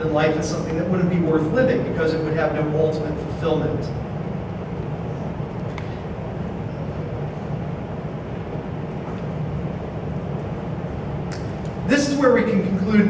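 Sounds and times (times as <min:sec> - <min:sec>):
low rumble of room noise: 0:00.0 - 0:13.0.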